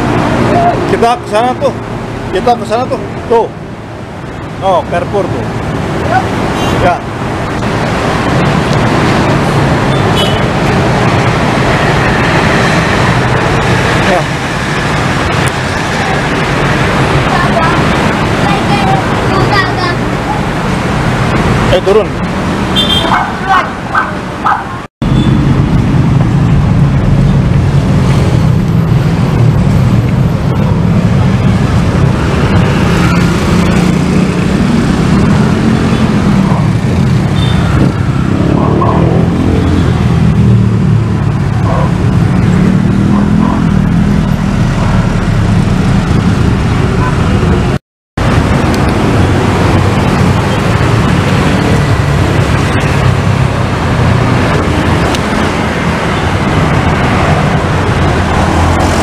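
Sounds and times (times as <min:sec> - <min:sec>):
motorcycles and cars passing: 0:00.0 - 0:59.0.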